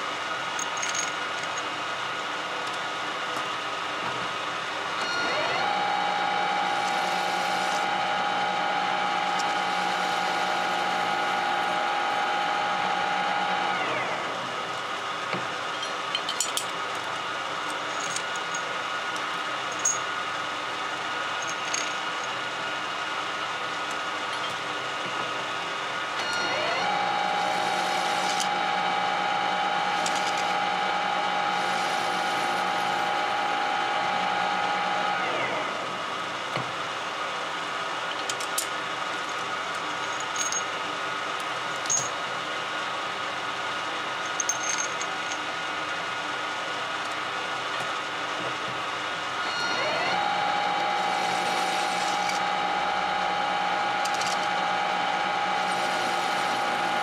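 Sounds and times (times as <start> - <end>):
workshop machine hum: 0.0 - 57.0
lathe spindle whining: 5.0 - 14.8, 26.2 - 36.1, 49.4 - 57.0
metallic clinks: 44.3 - 45.5.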